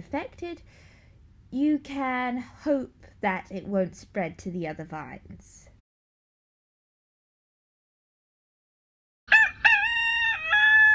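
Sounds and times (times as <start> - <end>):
rooster crowing: 9.3 - 10.9.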